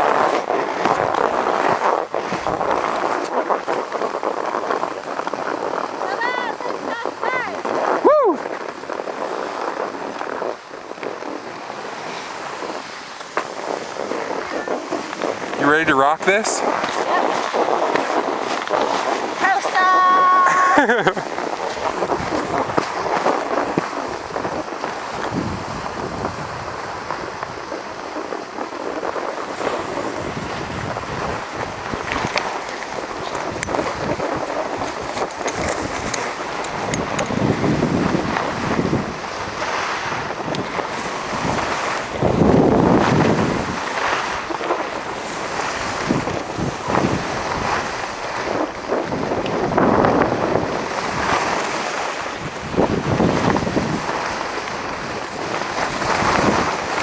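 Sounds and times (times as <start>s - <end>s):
skis hissing over snow: 0.0s - 57.0s
wind rushing across microphone: 0.0s - 57.0s.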